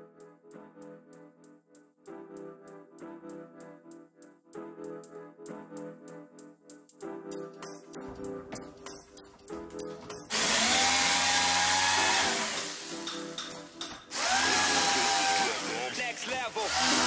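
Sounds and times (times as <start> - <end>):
background music: 0.0 - 17.0
electric jigsaw cutting wood: 10.3 - 13.1, 14.1 - 17.0.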